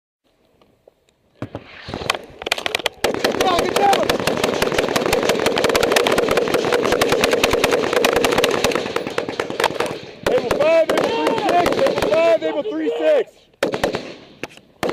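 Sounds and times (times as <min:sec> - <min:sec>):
automatic gunfire: 0:02.6 - 0:12.4, 0:13.6 - 0:14.9.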